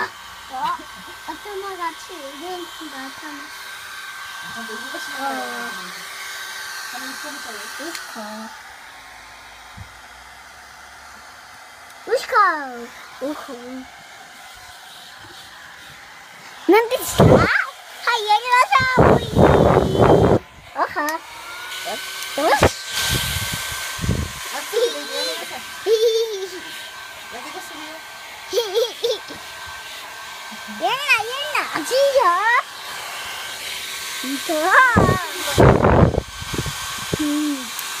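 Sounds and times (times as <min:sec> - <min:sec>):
hair dryer blowing air: 0:00.0 - 0:38.0
young child's vocal sound: 0:16.8 - 0:19.5, 0:24.8 - 0:26.7, 0:37.2 - 0:37.7.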